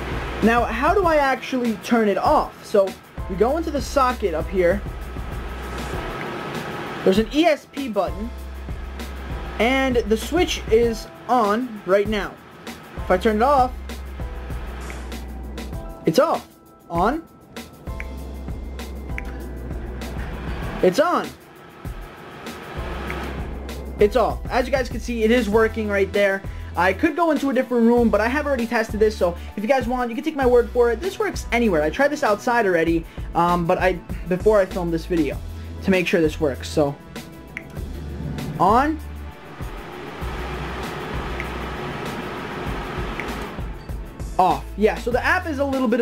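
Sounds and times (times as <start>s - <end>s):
electric appliance humming: 0.0s - 7.4s, 8.1s - 16.0s, 17.2s - 24.5s, 36.7s - 44.2s
tower fan rush of air: 0.0s - 27.5s, 32.9s - 44.2s.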